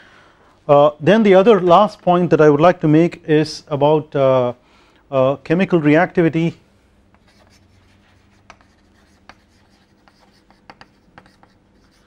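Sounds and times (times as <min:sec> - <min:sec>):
chalk tapping and scratching: 0:07.1 - 0:12.0.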